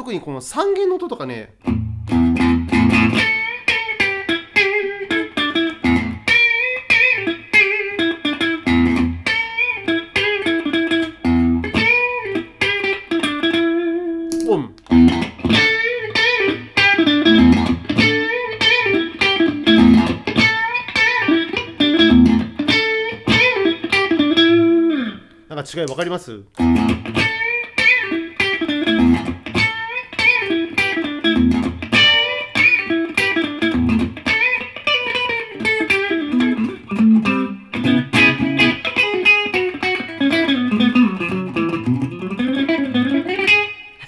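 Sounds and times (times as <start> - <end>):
electric guitar single-note phrase: 26.6 - 44.0.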